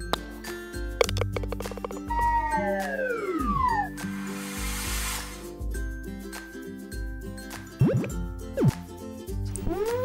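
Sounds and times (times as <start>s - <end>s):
children's background music: 1.6s - 4.2s, 5.4s - 10.0s
cartoon falling whistle: 2.1s - 4.0s
short burst of hiss: 4.0s - 5.5s.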